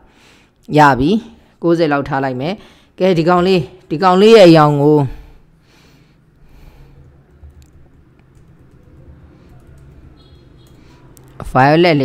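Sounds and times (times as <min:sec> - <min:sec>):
computer keyboard keystrokes: 0:07.0 - 0:11.4.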